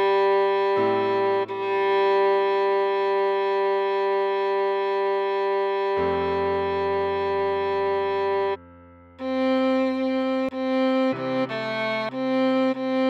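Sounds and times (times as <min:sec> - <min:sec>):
cello melody: 0:00.0 - 0:13.0
low accompaniment: 0:00.0 - 0:13.0.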